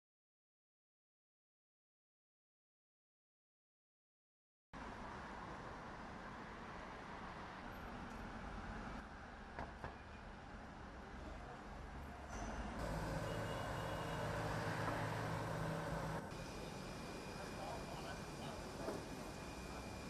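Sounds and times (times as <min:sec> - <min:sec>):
vehicle rumble: 0:11.4 - 0:19.7
low engine hum: 0:12.8 - 0:17.6.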